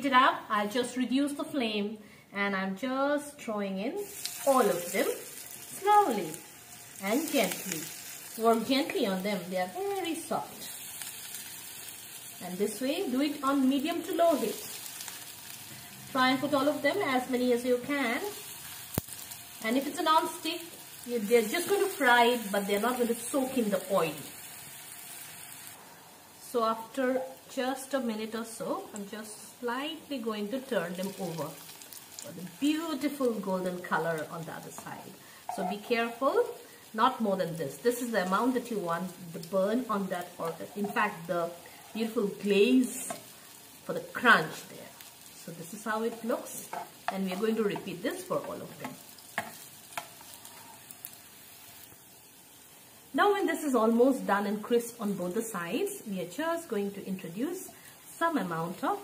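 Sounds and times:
kebabs sizzling in oil: 3.7 - 59.0.

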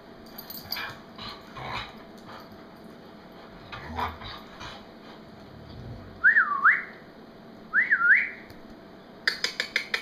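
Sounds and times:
person whistling: 6.2 - 6.9, 7.7 - 8.4.

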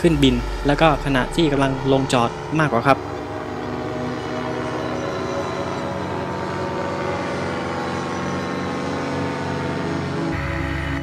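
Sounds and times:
paramotor engine droning: 0.0 - 11.0.

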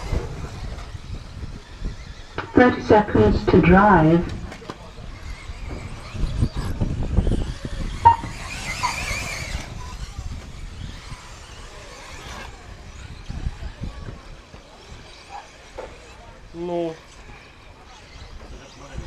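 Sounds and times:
rc car motors whining: 0.0 - 2.5, 4.1 - 19.0.

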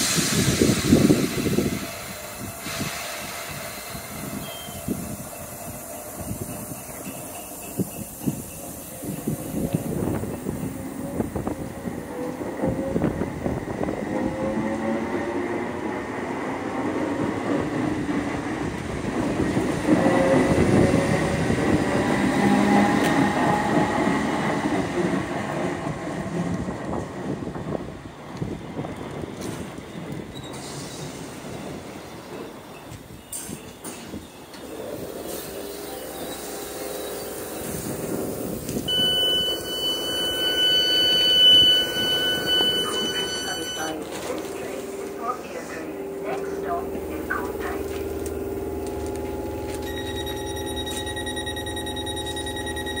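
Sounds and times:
train rumble: 0.0 - 53.0
train wheels squealing: 4.3 - 9.7, 30.3 - 31.2, 35.3 - 38.0, 38.9 - 44.0
high-pitched electronic tone: 38.9 - 44.0, 49.7 - 53.0.

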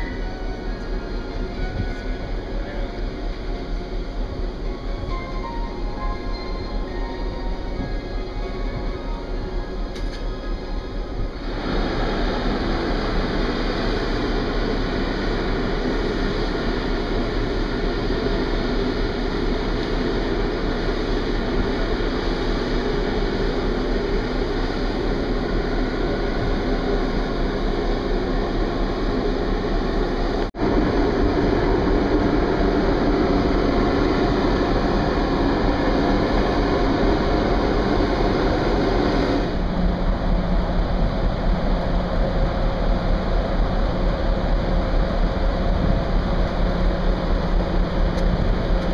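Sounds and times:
low rumble: 0.0 - 48.9
wind rushing over microphone: 30.6 - 48.9.

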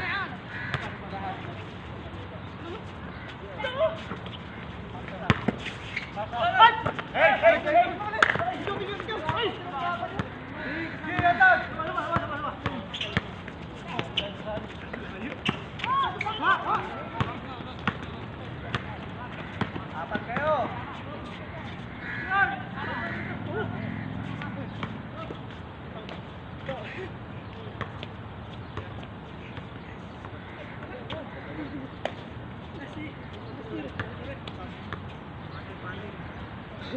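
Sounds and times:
players shouting: 2.6 - 21.3, 22.0 - 25.4.

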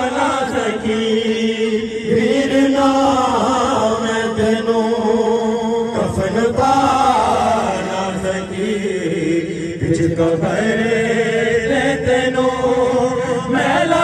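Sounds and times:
person chanting a lament: 0.0 - 14.0.

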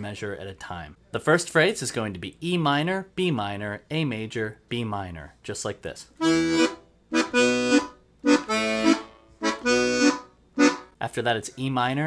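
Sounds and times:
accordion bass chords: 6.2 - 11.0.

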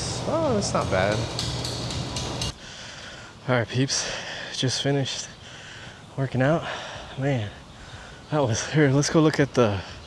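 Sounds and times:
air-conditioning hum: 0.0 - 10.0.

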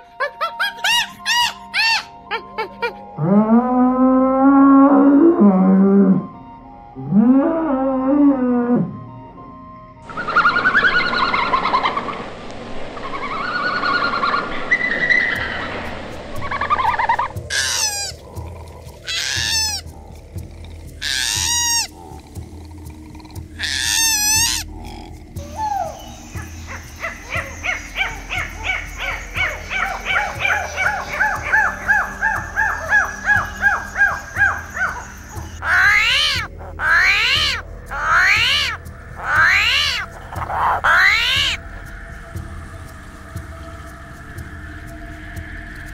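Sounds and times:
animal chirps: 0.6 - 2.1, 16.5 - 41.6
loud arching animal cries: 0.7 - 2.2, 16.5 - 41.6
sharp rising animal cries: 16.4 - 20.1, 21.0 - 22.4, 23.6 - 41.6
fast short animal calls: 17.5 - 18.2, 19.0 - 19.9, 21.0 - 21.9.

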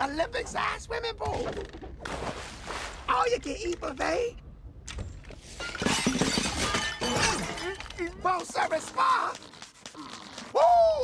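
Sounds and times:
crockery clattering and smashing: 5.5 - 8.1.

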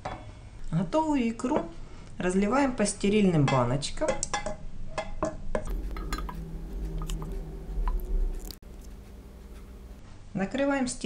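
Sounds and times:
soft squishing of puree: 5.7 - 10.0.

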